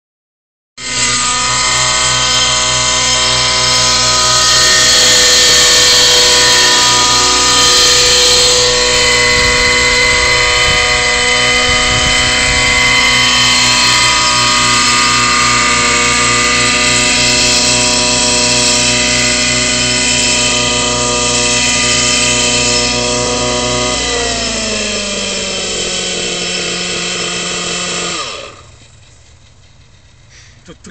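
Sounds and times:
model helicopter engine running: 0:00.8 - 0:30.9.

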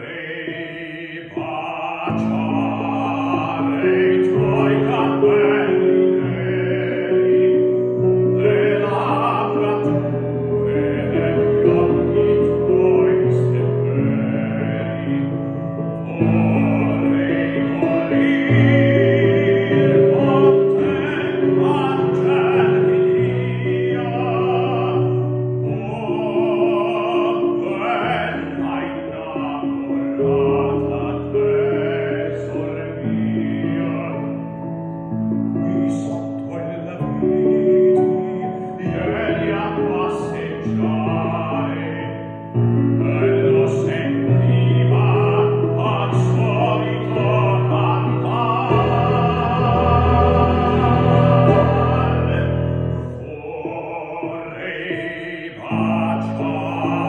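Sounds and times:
man singing operatically: 0:00.0 - 0:57.0
accompaniment chords: 0:47.1 - 0:53.2.

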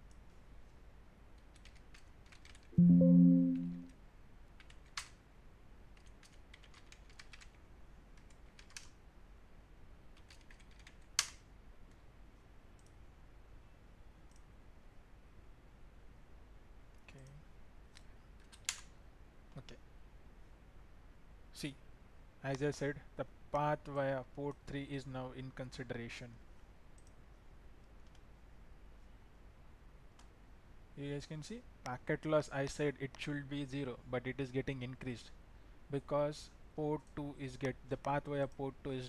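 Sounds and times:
keyboard keys clicking: 0:01.5 - 0:03.9, 0:10.2 - 0:11.0
loud low tone: 0:02.8 - 0:03.9.

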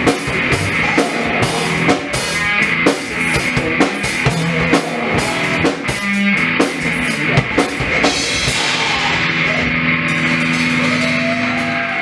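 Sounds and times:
rock band chord ringing out: 0:00.0 - 0:12.0.

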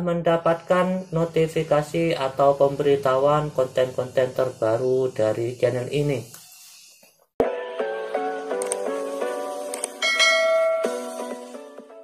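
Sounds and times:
background music of short notes: 0:07.4 - 0:12.0
notification bell chime: 0:10.0 - 0:11.0.

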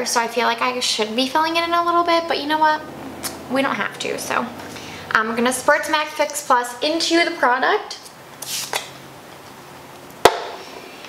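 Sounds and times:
sharp knock: 0:10.2 - 0:10.6.

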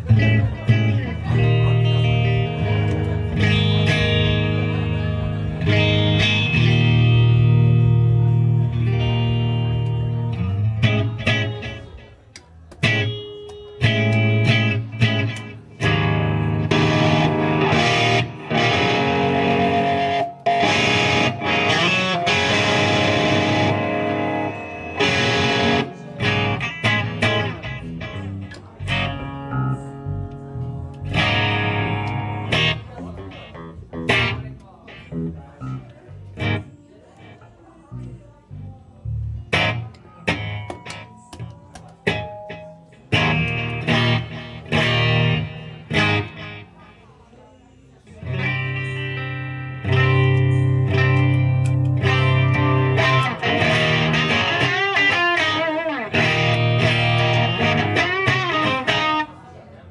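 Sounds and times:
amplified electric guitar: 0:00.0 - 0:47.1, 0:48.1 - 0:59.9.

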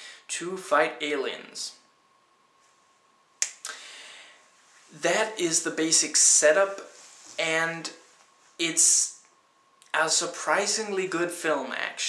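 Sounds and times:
man breathing in: 0:03.7 - 0:04.5.

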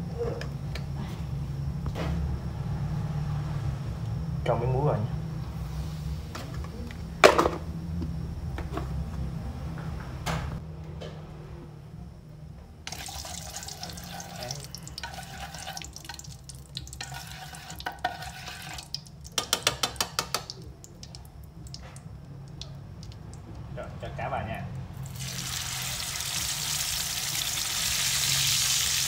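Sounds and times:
utensil scraping metal pan: 0:17.0 - 0:18.9.

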